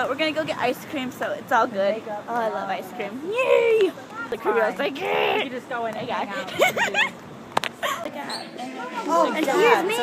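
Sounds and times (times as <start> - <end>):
faint voices: 0.0 - 10.0
girl giggling muffled: 7.8 - 8.2.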